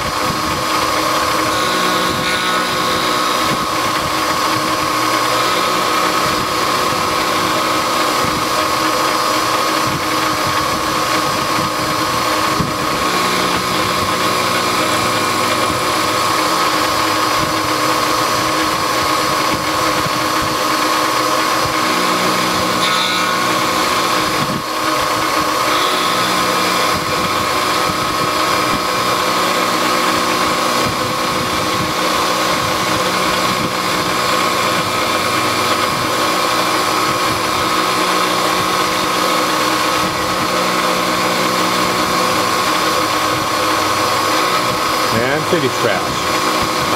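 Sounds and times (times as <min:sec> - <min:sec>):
low hum: 0:00.0 - 0:46.9
milling machine whine with cutting: 0:00.0 - 0:46.9.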